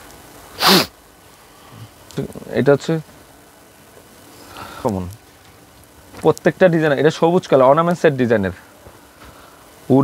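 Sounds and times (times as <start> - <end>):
person sneezing: 0.6 - 0.9.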